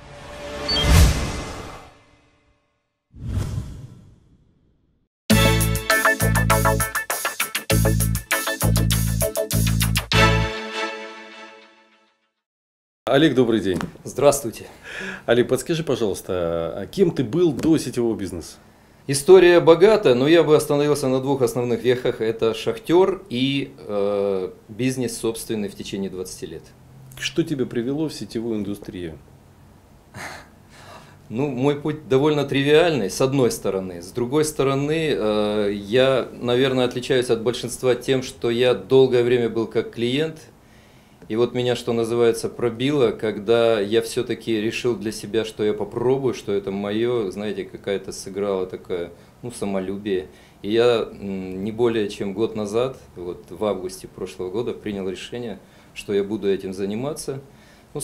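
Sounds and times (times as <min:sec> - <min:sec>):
whoosh sound effect: 0:00.0 - 0:02.4, 0:03.2 - 0:04.5
man breathing in: 0:14.8 - 0:15.3, 0:30.2 - 0:31.2, 0:40.6 - 0:41.2, 0:50.3 - 0:50.6, 0:55.6 - 0:56.0, 0:57.5 - 0:57.9.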